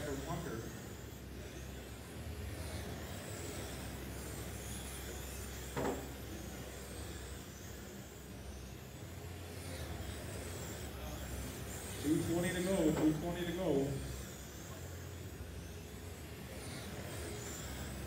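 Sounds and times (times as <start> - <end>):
rc car motor whine: 0.0 - 18.0
steady hum: 0.0 - 18.0.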